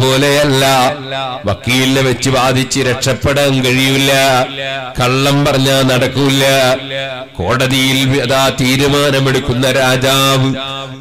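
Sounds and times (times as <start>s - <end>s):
man's amplified voice chanting: 0.0s - 11.0s.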